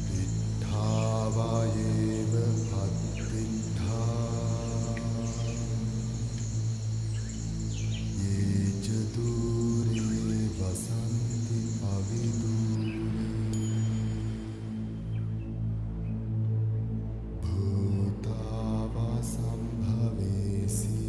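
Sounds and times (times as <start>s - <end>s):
voices chanting: 0.0s - 14.4s
high shrill insect-like tone: 0.0s - 15.1s
steady low drone: 0.0s - 21.0s.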